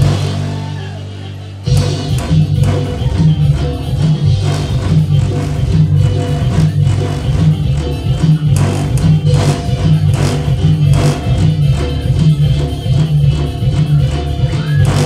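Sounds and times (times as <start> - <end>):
loud dance music over loudspeakers: 0.0 - 15.0.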